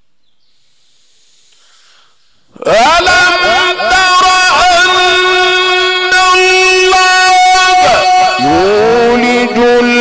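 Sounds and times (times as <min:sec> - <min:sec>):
faint hiss: 0:00.4 - 0:02.5
man chanting recitation: 0:02.5 - 0:10.0.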